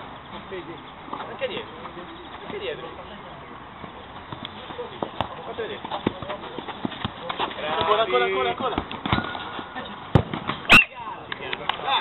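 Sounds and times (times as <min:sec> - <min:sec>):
players' footsteps: 0:00.0 - 0:10.7
faint voices: 0:00.3 - 0:12.0
ball being kicked: 0:05.0 - 0:08.0, 0:10.1 - 0:10.7.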